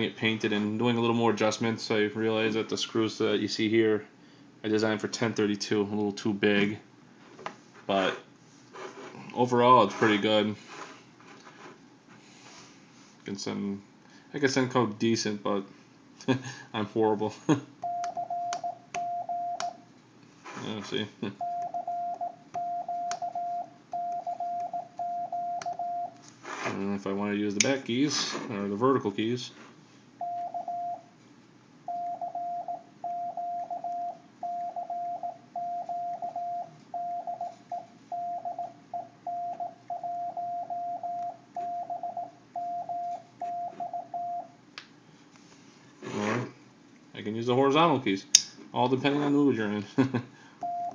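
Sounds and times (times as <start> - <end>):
morse code beeps: 17.8 - 19.7, 21.4 - 26.2, 30.2 - 31.0, 31.9 - 44.5, 50.6 - 50.9.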